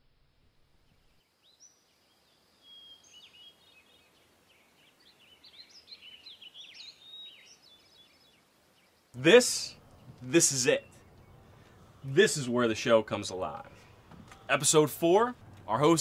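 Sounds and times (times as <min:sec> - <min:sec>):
songbirds chirping and trilling: 0:00.9 - 0:16.0.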